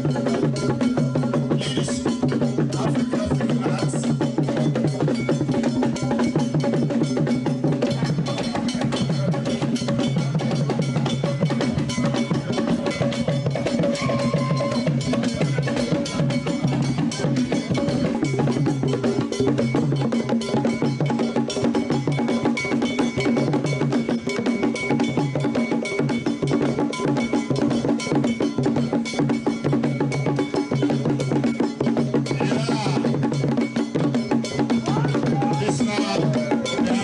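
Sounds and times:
bell playing a beat: 0:00.0 - 0:37.0
drums: 0:00.0 - 0:37.0.

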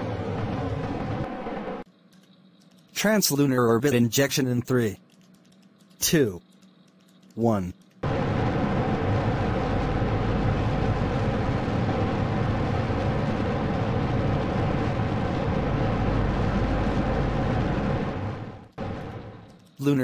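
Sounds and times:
rocket engine firing: 0:00.0 - 0:01.8, 0:08.0 - 0:19.5.

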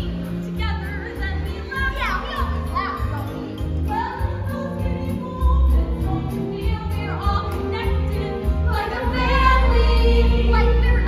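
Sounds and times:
musical theatre accompaniment: 0:00.0 - 0:11.0.

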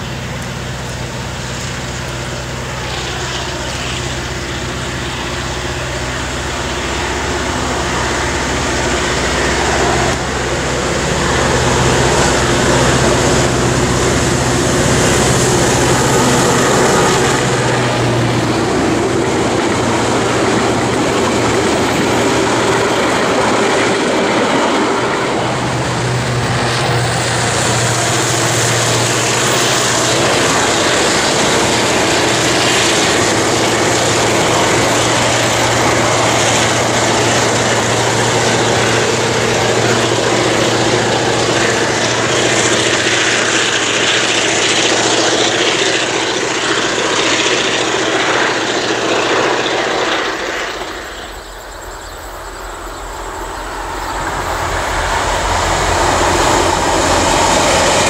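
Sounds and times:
diesel locomotive engine: 0:00.0 - 0:58.0
train wheels rumbling on rails: 0:00.0 - 0:58.0.

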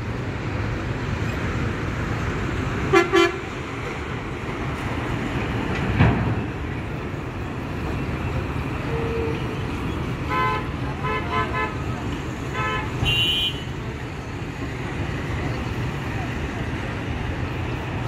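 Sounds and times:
low rumble of engines: 0:00.0 - 0:18.0
vehicle horns tooting: 0:02.9 - 0:03.4, 0:08.8 - 0:09.6, 0:10.3 - 0:11.8, 0:12.5 - 0:13.8
thump: 0:05.8 - 0:06.4.

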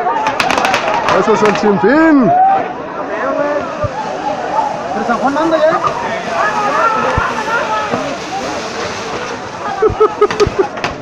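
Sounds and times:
crowd voices: 0:00.0 - 0:11.0
fireworks popping: 0:00.2 - 0:01.8, 0:05.0 - 0:11.0.

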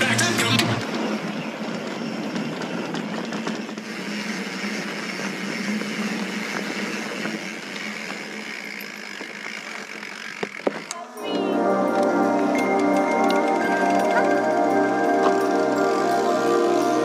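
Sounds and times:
tyre and wind noise: 0:00.0 - 0:11.0
bike clicks and rattles: 0:00.0 - 0:11.1, 0:11.9 - 0:15.9.

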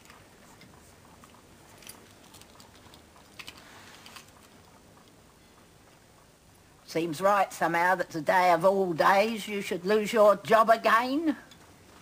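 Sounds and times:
light rustling of handling: 0:00.0 - 0:06.0.

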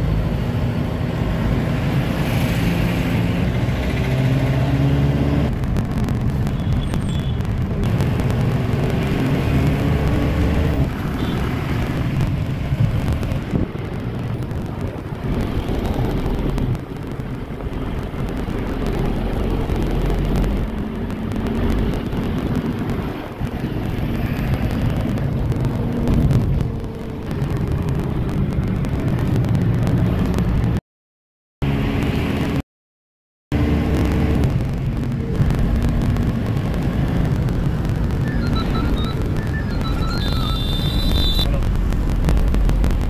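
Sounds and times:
minibus engine and road noise: 0:00.0 - 0:30.8, 0:31.6 - 0:32.6, 0:33.5 - 0:43.0.

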